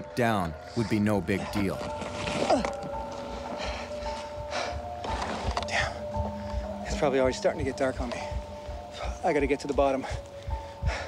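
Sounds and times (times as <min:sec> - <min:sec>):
held music tone: 0:00.0 - 0:11.0
footsteps crunching through snow: 0:01.4 - 0:04.3.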